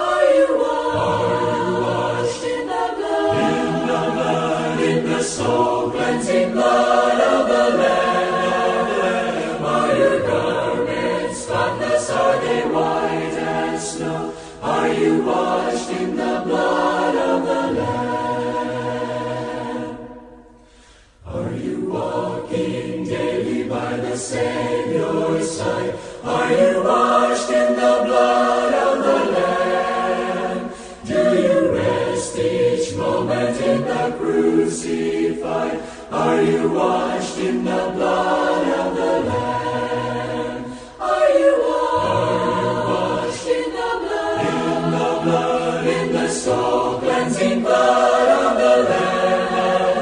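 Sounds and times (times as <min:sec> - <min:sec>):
choir singing a hymn: 0:00.0 - 0:50.0.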